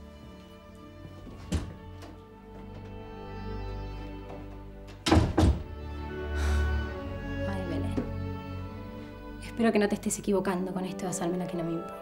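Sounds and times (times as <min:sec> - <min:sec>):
soft background music: 0:00.0 - 0:12.0
door shutting with thunks: 0:01.2 - 0:03.1, 0:04.2 - 0:05.8.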